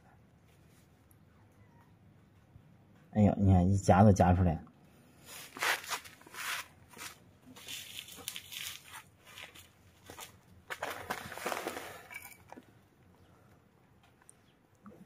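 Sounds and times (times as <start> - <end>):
rustling in a wire cage: 5.2 - 12.9.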